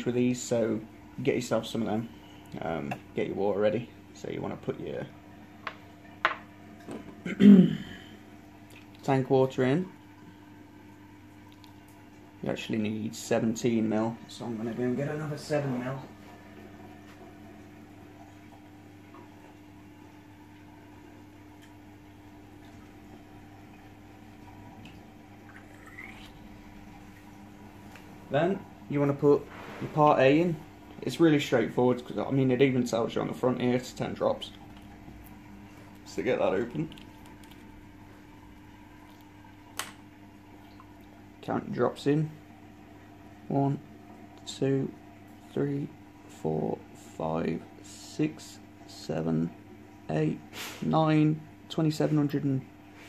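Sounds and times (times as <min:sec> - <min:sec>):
low hum: 0:09.6 - 0:46.0.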